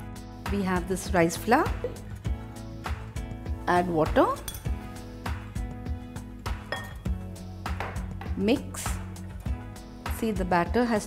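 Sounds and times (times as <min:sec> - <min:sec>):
background music: 0:00.0 - 0:11.0
glass jug clinking on glass bowl: 0:06.7 - 0:07.1.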